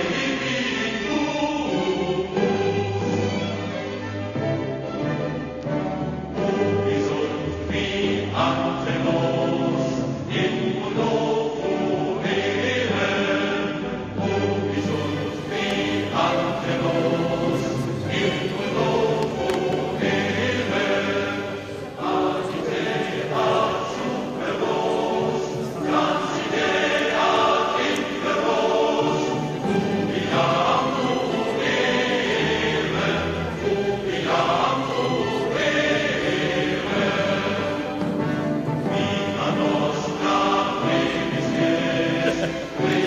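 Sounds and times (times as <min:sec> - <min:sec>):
choir singing: 0:00.0 - 0:43.0.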